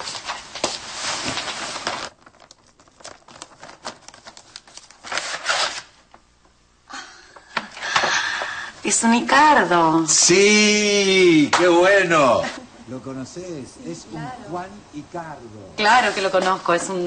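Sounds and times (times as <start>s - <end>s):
wrapping paper tearing and crumpling: 0.0s - 6.1s.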